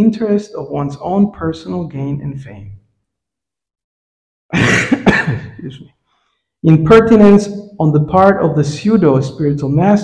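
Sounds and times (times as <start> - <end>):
man coughing: 4.5 - 5.8.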